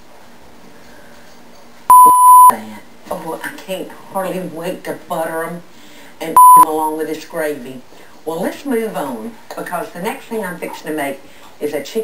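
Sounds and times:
censor bleep tone: 1.9s - 2.5s, 6.4s - 6.7s.

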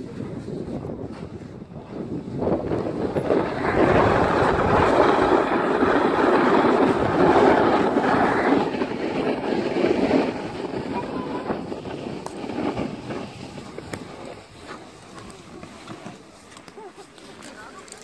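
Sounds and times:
snowboard scraping over snow: 0.0s - 18.0s
wind on microphone: 0.0s - 18.0s.

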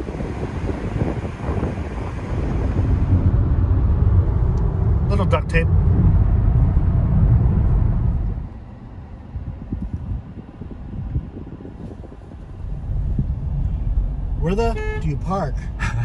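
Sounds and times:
car cabin road rumble: 0.0s - 16.0s.

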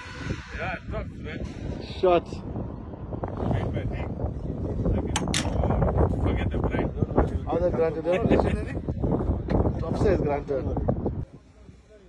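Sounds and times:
wind on microphone: 0.0s - 11.9s.

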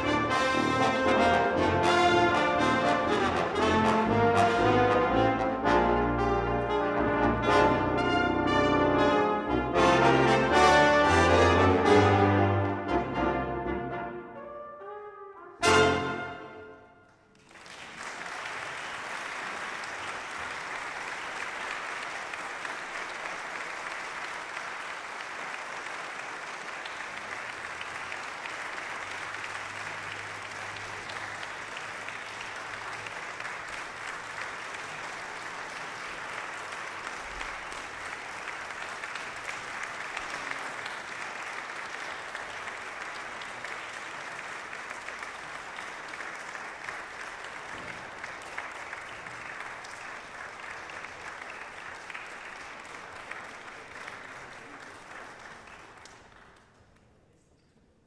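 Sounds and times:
audience applauding: 0.0s - 12.8s, 17.1s - 57.2s.

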